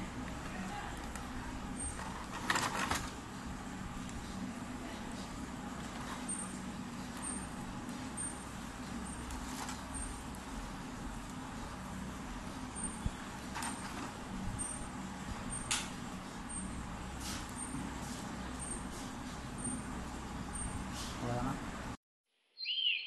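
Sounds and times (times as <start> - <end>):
low background hum: 0.0 - 22.0.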